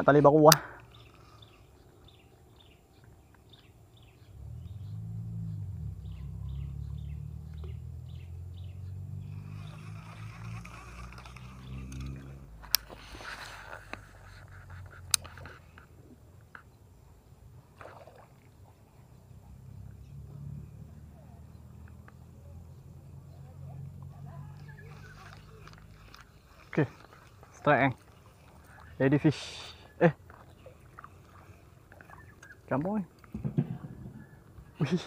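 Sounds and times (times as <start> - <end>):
low engine drone: 3.6 - 16.2.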